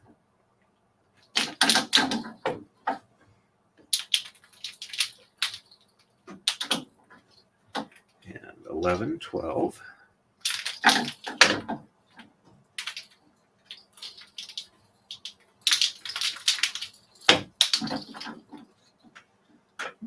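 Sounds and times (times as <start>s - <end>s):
bobbins clattering on braiding stand: 3.8s - 8.1s, 10.4s - 19.1s.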